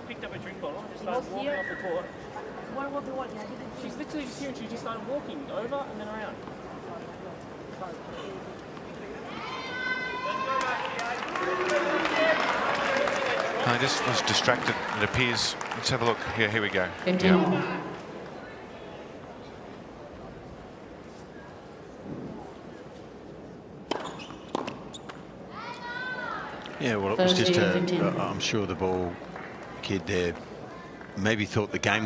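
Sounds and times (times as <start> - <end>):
background noise: 0.0 - 32.0
people talking: 13.6 - 18.0, 26.8 - 29.2
crowd murmur: 17.0 - 18.8, 26.4 - 29.8.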